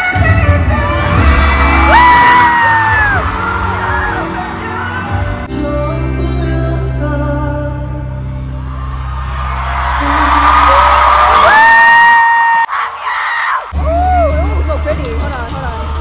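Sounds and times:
man singing with backing track: 0.0 - 8.4
song with heavy bass: 0.0 - 11.6, 13.8 - 16.0
crowd cheering and screaming: 0.2 - 5.5, 8.1 - 14.5.

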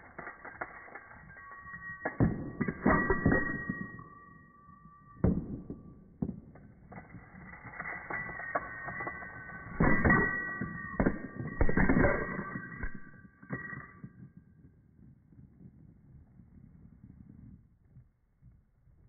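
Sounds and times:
coins clinking on surface: 0.0 - 4.4, 7.0 - 13.9.

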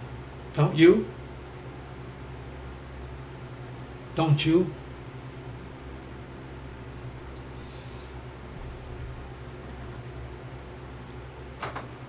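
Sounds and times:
low room hum with hiss: 0.0 - 12.0.

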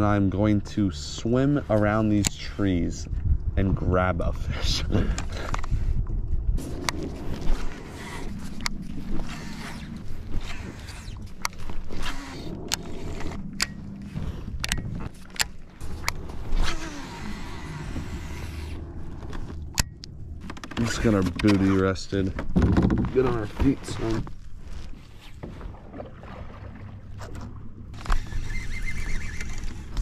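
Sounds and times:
fishing reel whirring: 6.6 - 19.8, 28.0 - 30.0.

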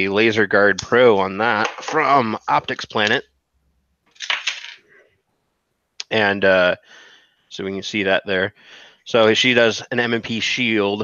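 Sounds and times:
clatter of small hard objects: 4.2 - 4.9.

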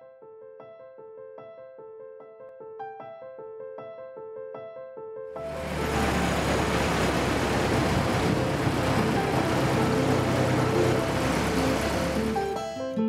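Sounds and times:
rushing noise: 5.4 - 12.5
engine drone: 5.4 - 12.6
faint music: 5.5 - 12.4.

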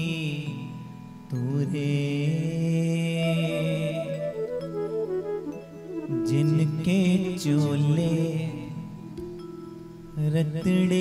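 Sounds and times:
man singing: 0.0 - 4.6, 6.0 - 9.2, 10.2 - 11.0.

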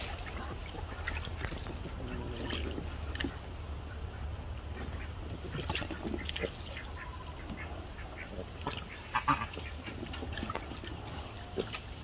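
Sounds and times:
duck splashing water: 0.0 - 12.0.

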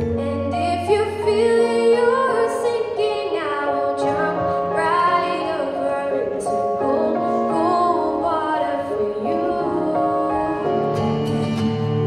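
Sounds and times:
girl singing long notes: 0.1 - 11.1.

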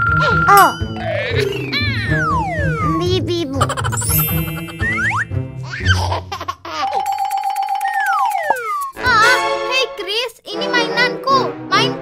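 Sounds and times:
upbeat children's music: 0.1 - 12.0
bell-like dings: 0.5 - 1.7, 6.8 - 8.9
whistle-like slides: 7.9 - 9.0.

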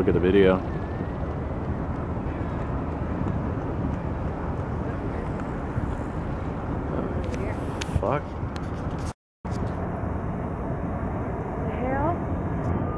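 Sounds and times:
distant jet airliners rumbling: 0.0 - 12.9.

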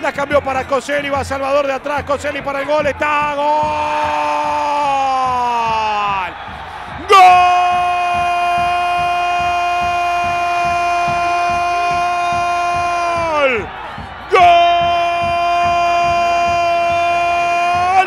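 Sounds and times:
commentator's drawn-out goal cry: 7.0 - 18.0.

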